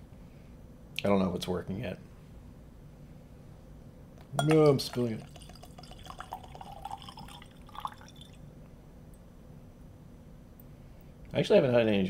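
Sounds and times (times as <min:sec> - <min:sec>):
liquid trickling into a glass: 0:04.4 - 0:08.4.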